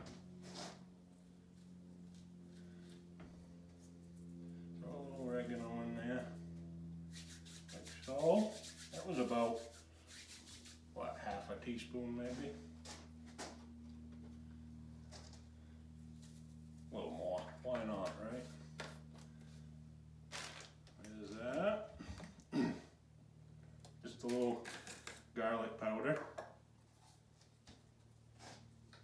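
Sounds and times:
steady low hum: 0.0 - 29.0
man talking quietly: 11.0 - 12.6.

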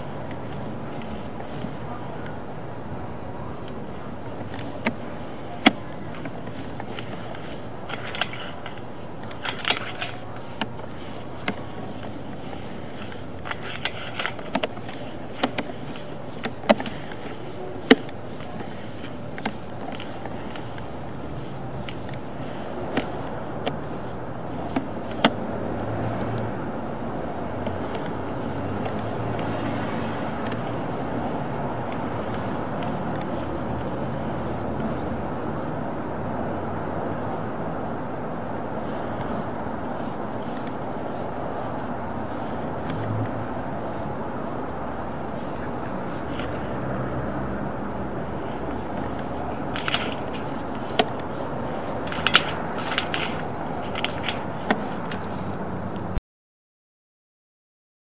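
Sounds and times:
steady rushing noise: 0.0 - 56.2
cable clicks and knocks: 3.6 - 26.6, 27.3 - 35.1, 48.5 - 56.1.

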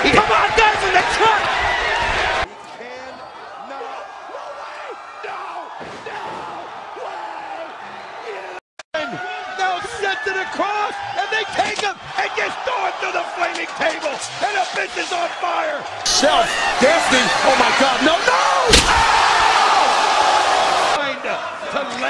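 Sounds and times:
arena noise: 0.0 - 22.0.

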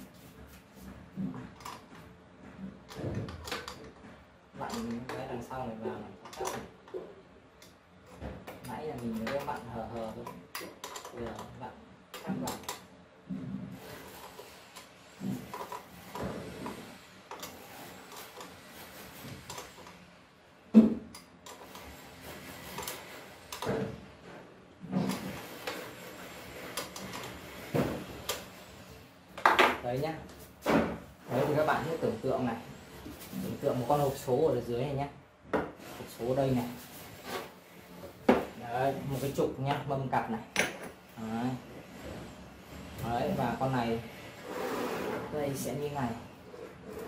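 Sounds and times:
metal carriage sliding on rails: 41.8 - 47.0.

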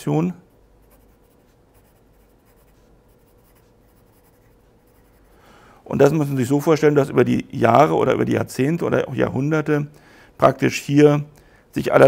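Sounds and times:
pen scratching on paper: 0.8 - 5.4.

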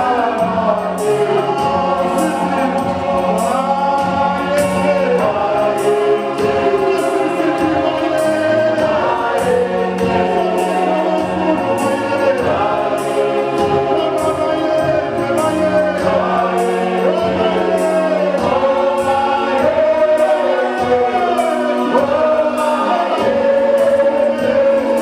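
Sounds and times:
gospel group singing: 0.0 - 25.0.

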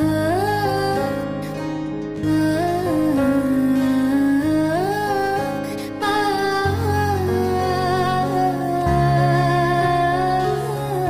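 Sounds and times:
acoustic guitar: 0.0 - 11.0
keyboard: 0.0 - 11.0.

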